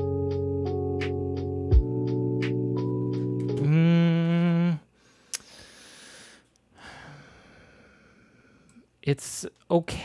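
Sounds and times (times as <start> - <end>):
electric piano chord: 0.0 - 3.8.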